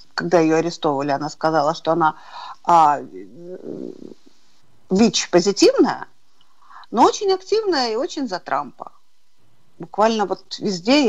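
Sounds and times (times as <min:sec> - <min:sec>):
woman speaking: 0:00.0 - 0:04.2, 0:04.9 - 0:06.2, 0:06.8 - 0:09.0, 0:09.8 - 0:11.0.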